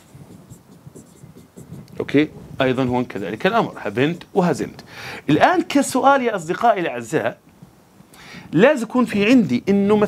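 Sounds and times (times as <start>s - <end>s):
pen scratching and tapping on screen: 0.0s - 2.0s.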